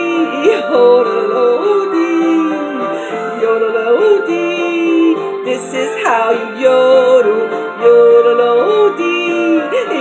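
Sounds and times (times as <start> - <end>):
karaoke backing track: 0.0 - 10.0
woman yodeling: 0.0 - 10.0.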